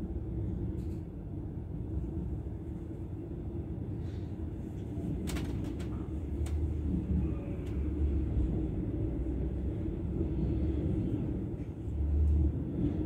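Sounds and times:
train rumble inside carriage: 0.0 - 13.0.

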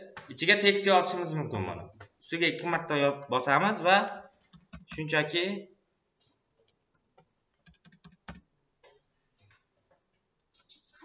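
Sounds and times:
keyboard keystrokes: 4.2 - 5.0, 7.6 - 8.4.

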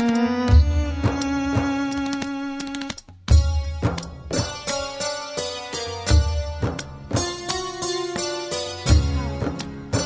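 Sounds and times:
light percussion beat: 0.0 - 10.0.

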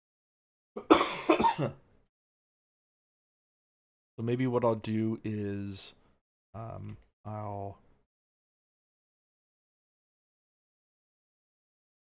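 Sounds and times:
man coughing: 0.8 - 1.8.

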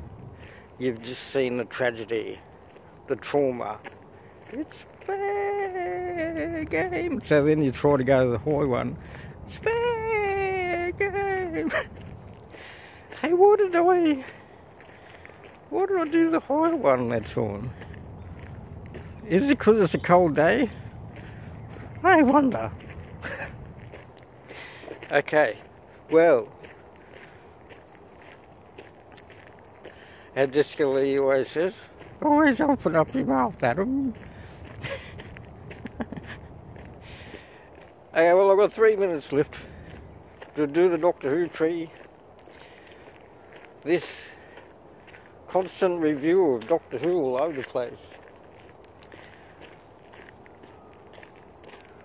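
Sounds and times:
footsteps crunching on path: 0.0 - 52.0
outdoor background noise: 0.0 - 52.0.

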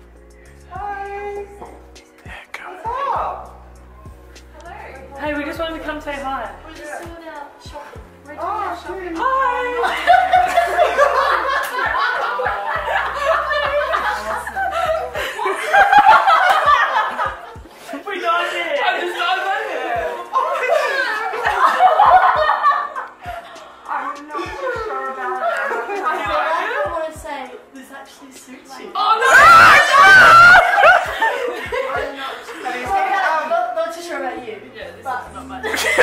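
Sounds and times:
women laughing: 9.3 - 17.6, 20.3 - 23.6, 24.4 - 26.9, 29.2 - 32.8, 35.6 - 36.0
women shrieking: 29.0 - 31.6.

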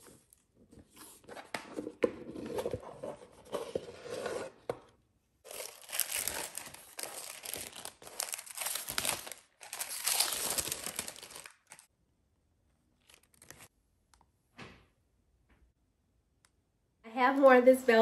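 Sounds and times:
tissue paper crinkling: 5.5 - 11.9.

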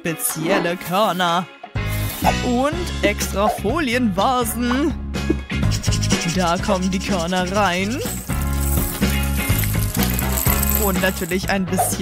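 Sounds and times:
background music: 0.0 - 12.0
popcorn kernels pouring into foil cups: 7.9 - 11.5.

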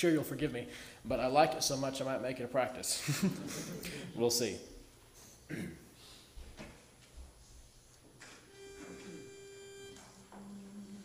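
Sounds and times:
held starting pitch notes: 8.5 - 11.0.

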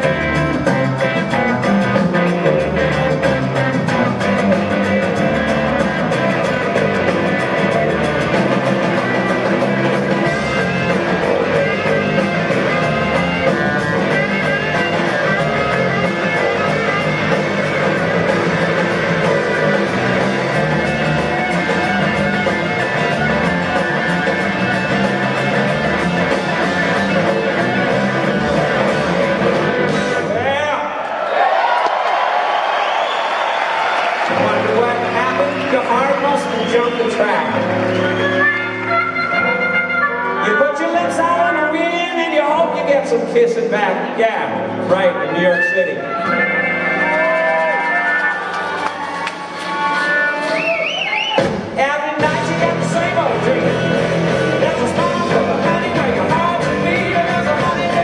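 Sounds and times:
electric guitar: 0.0 - 30.4, 34.2 - 41.4, 42.6 - 58.0
electric bass: 0.0 - 30.5, 34.3 - 58.0
drum kit: 0.0 - 30.6, 46.2 - 58.0.

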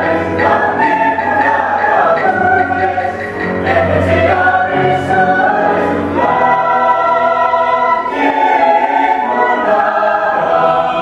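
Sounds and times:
choir singing held chords: 0.0 - 11.0.

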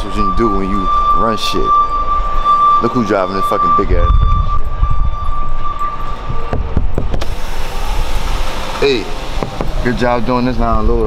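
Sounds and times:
steady high-pitched tone: 0.0 - 10.8.

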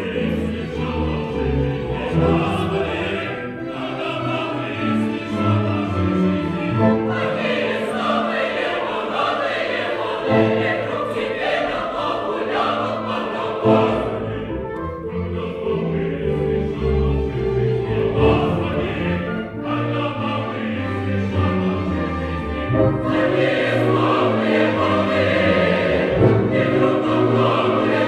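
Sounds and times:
opera chorus singing: 0.0 - 28.0
orchestra: 0.0 - 28.0.

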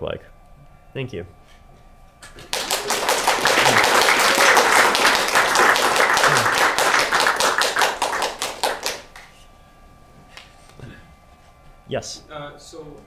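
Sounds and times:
audience applauding: 2.3 - 9.3.

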